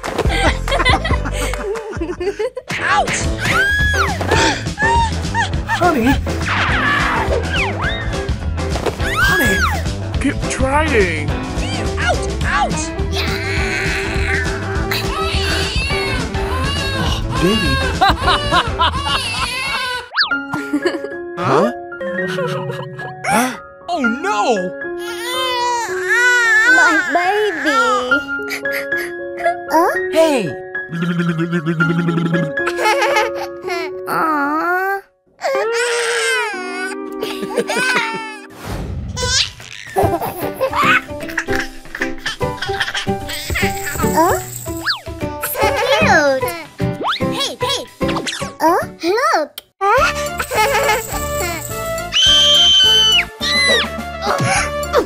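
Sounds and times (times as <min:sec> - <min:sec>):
children's background music: 0:02.7 - 0:55.0
baby crying: 0:13.1 - 0:20.3, 0:25.0 - 0:28.8, 0:33.8 - 0:38.5
whistle-like cartoon sound effect: 0:52.1 - 0:53.9.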